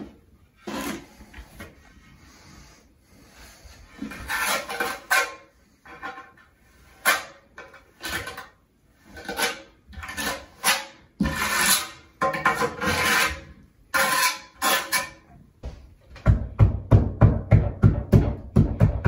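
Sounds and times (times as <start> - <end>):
trowel scraping mortar on tile: 0.0 - 2.5, 3.2 - 15.3.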